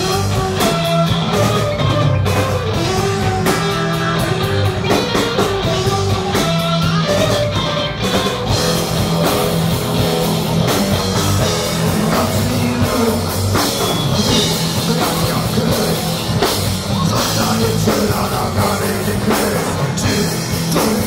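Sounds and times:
bass guitar: 0.0 - 21.0
distorted electric guitars: 0.0 - 21.0
drum kit: 0.0 - 21.0.

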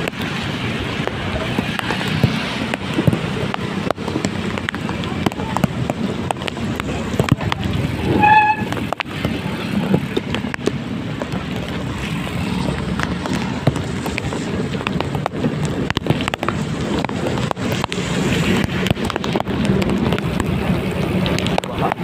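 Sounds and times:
raindrops hitting microphone: 0.0 - 22.0
road and wind noise: 0.0 - 22.0
vehicle engine drone: 0.0 - 22.0.

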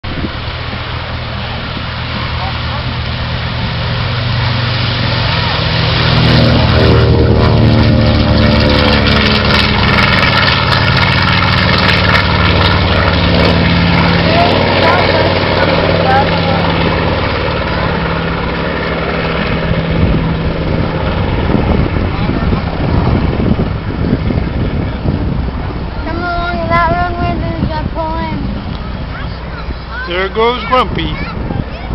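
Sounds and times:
propeller plane engines droning: 0.0 - 31.9.

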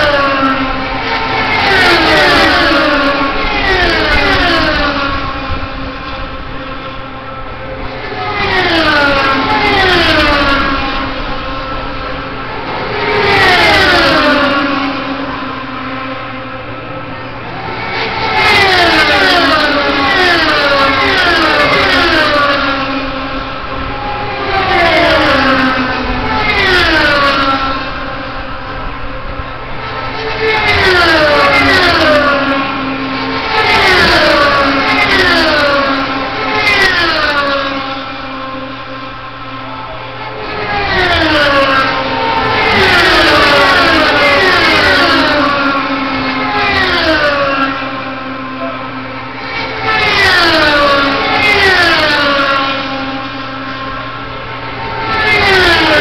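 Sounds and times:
race cars passing at full speed: 0.0 - 56.0.

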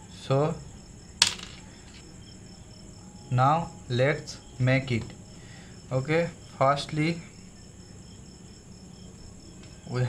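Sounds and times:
small part tapped on wooden table: 1.2 - 1.6.

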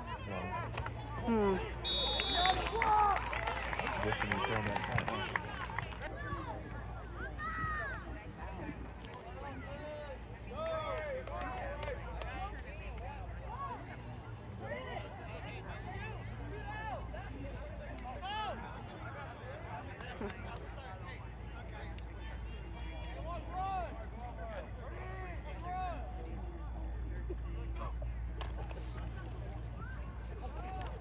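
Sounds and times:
low background noise: 0.0 - 31.0
voices talking and calling out: 0.0 - 31.0.

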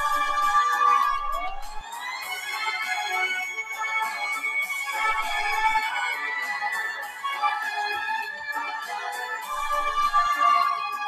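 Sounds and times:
opera singing: 0.0 - 3.4, 4.2 - 11.0.

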